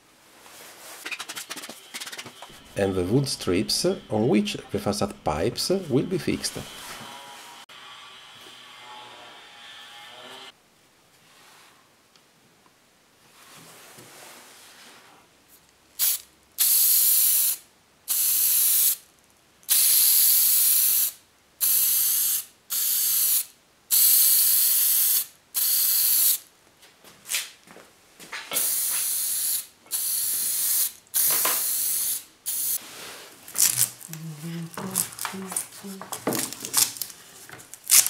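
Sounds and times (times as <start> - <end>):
aerosol spray can bursts: 16.0 - 19.0, 19.7 - 26.4, 28.6 - 32.8.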